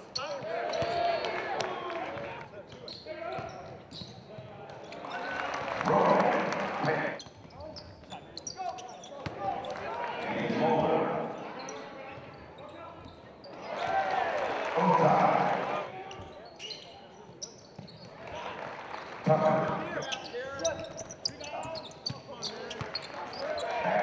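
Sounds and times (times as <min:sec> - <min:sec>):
voices of players and crowd: 0:00.0 - 0:24.0.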